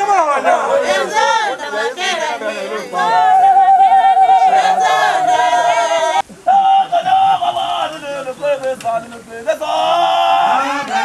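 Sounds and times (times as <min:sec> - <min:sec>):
women singing unaccompanied: 0:00.5 - 0:06.3.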